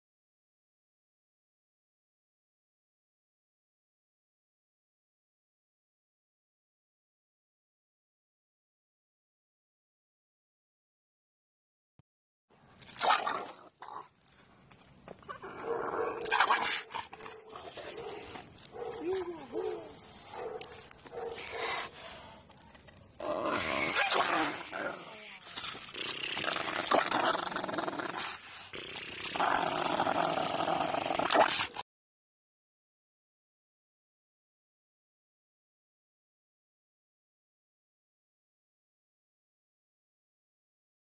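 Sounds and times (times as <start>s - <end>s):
large dog barking: 15.6s - 22.0s
people's voices: 18.9s - 20.0s.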